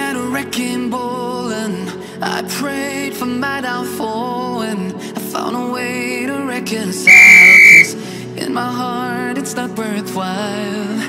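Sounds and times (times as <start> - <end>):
pop music with singing: 0.0 - 11.0
long electronic beep: 7.1 - 7.9.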